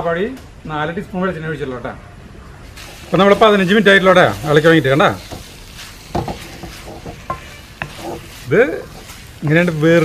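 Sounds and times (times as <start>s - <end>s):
low sizzle from pan: 2.6s - 10.0s
wooden spatula scraping metal pan: 2.8s - 10.0s.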